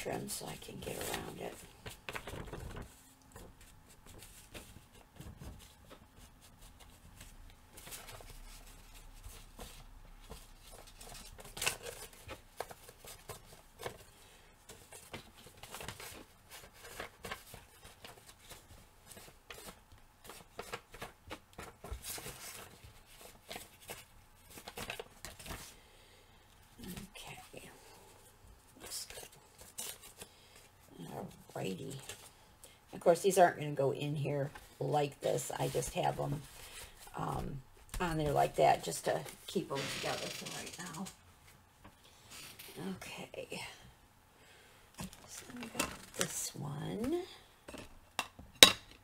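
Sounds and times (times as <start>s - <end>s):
paper rustling: 0.5s - 25.8s.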